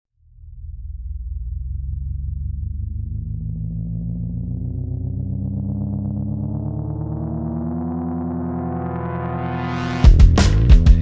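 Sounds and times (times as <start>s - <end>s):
pulsing synthesizer drone: 0.2s - 11.0s.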